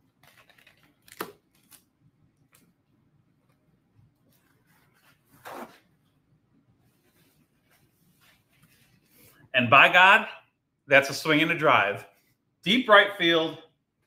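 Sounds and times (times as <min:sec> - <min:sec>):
paper towel tearing: 0:04.3 - 0:06.0
faint handling rustles: 0:06.8 - 0:09.5.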